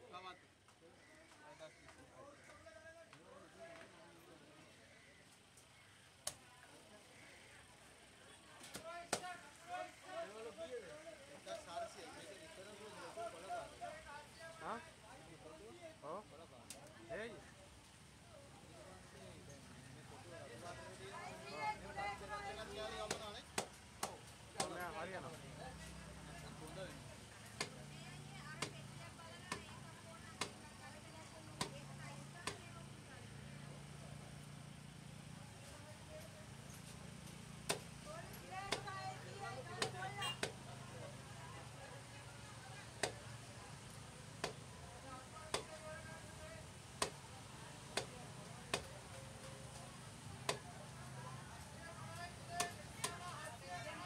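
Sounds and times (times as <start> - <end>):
voices: 0.0 - 54.0.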